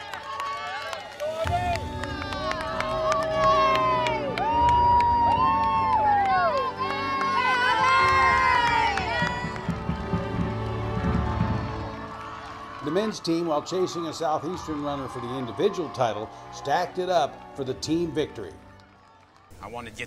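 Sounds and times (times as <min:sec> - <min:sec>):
crowd cheering and shouting: 0:00.0 - 0:19.6.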